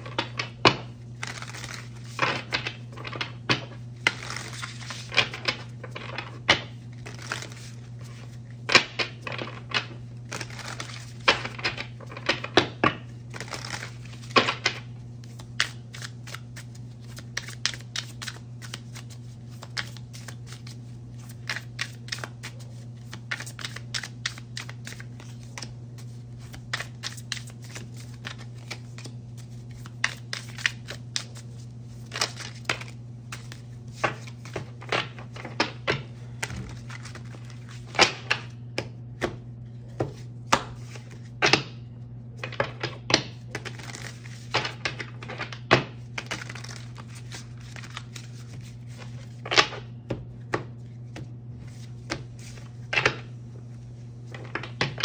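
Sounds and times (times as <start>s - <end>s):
cards shuffled by hand: 0.0s - 38.5s, 40.0s - 41.3s, 43.4s - 49.7s, 50.9s - 55.0s.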